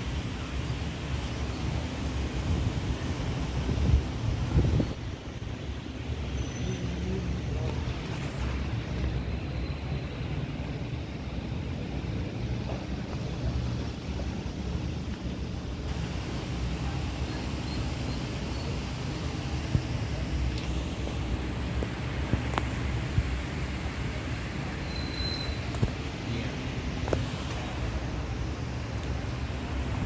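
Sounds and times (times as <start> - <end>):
wind buffeting microphone: 2.3 - 5.6.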